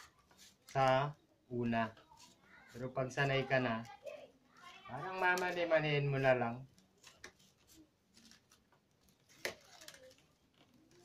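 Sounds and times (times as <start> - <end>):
wicker strip clicks and rustles: 6.7 - 11.0.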